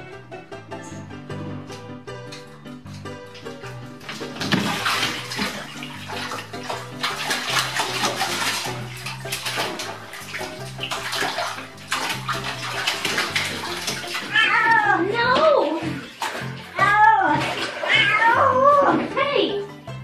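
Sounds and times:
background music: 0.0s - 20.0s
bathwater splashing: 1.6s - 20.0s
cat scrabbling against tub: 4.0s - 18.2s
cat meowing: 14.2s - 15.1s, 17.8s - 18.9s.

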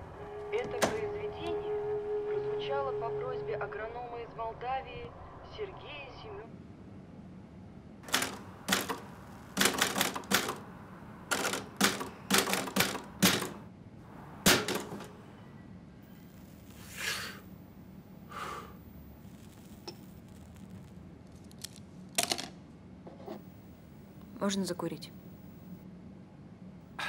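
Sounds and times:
typewriter keystrokes: 8.1s - 10.6s, 11.3s - 13.6s, 14.5s - 15.1s.

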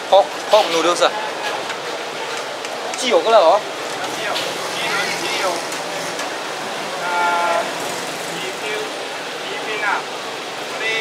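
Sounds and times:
street noise: 0.0s - 11.0s
background voices: 3.8s - 9.0s.

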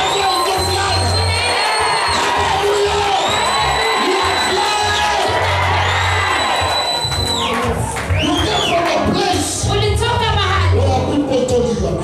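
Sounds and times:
high whistle-like tones: 0.0s - 2.2s, 3.1s - 5.0s, 5.9s - 8.8s
church worship music: 0.0s - 9.7s
congregation cheering and shouting: 0.0s - 9.7s.

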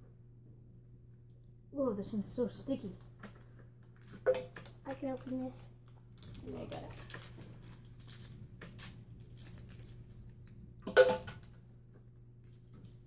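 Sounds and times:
plastic candy wrapper crinkling: 3.0s - 10.7s, 12.1s - 13.0s.

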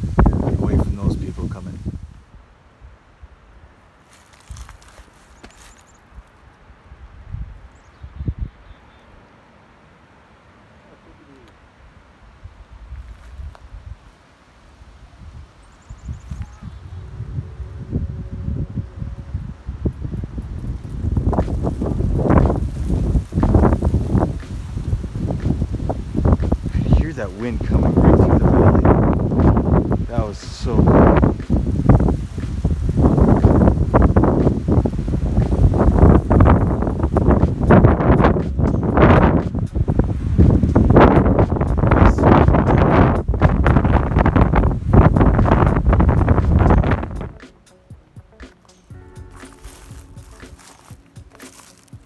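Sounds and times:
wind gusting on microphone: 0.0s - 3.7s, 6.1s - 8.8s, 11.7s - 47.4s.

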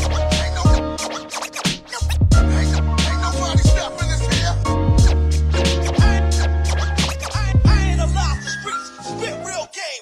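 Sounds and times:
turntable scratching: 0.0s - 9.4s
hip hop beat: 0.0s - 10.0s.

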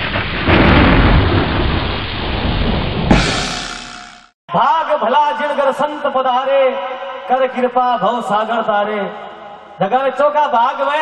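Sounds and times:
thunder rumble: 0.0s - 3.9s.

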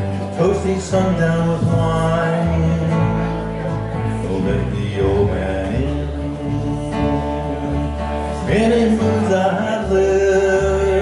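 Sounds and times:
acoustic guitar strummed: 0.0s - 11.0s
plucked upright bass: 0.0s - 11.0s.

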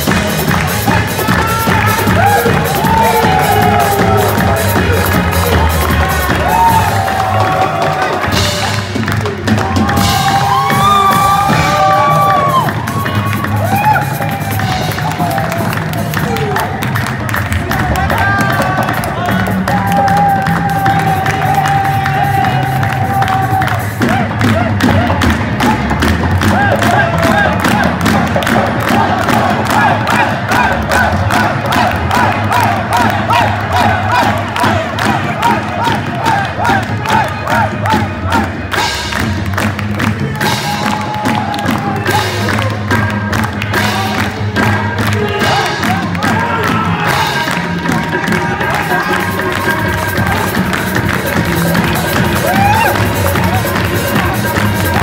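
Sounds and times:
crowd cheering and shouting: 0.0s - 55.0s.

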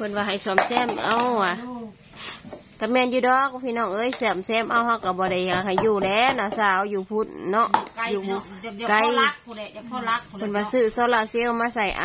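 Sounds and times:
woman talking: 0.0s - 2.0s, 2.8s - 12.0s.

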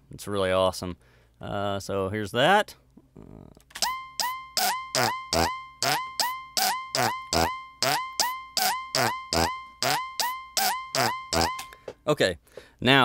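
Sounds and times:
electronic drum loop: 3.8s - 11.7s.

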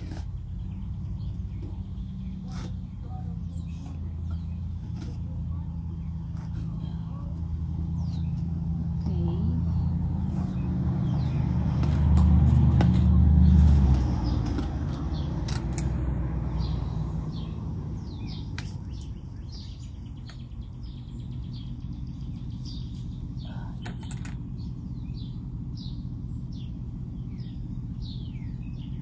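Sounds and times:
birds chirping: 0.0s - 29.0s
vehicle engine passing by: 0.0s - 29.0s.

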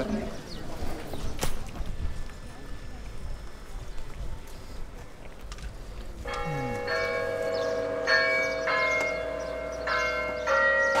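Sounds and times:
church bells ringing: 6.2s - 11.0s.

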